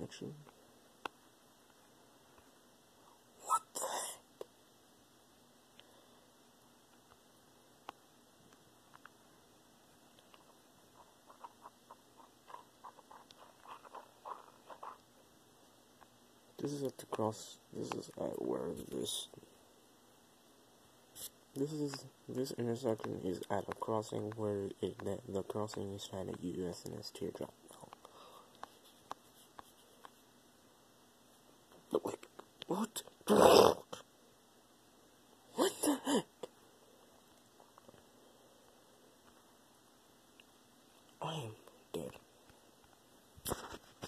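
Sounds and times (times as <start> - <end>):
faint clicks and taps: 6.9 - 9.2, 10.0 - 15.1, 21.9 - 30.3.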